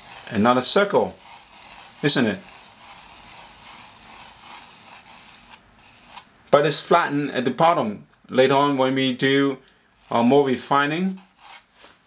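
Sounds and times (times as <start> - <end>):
pencil scratching on paper: 0.0 - 6.3, 10.0 - 11.7.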